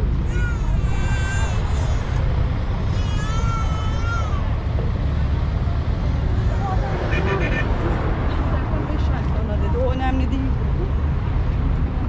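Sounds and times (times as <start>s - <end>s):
people's voices: 0.0s - 12.0s
road traffic rumble: 0.0s - 12.0s.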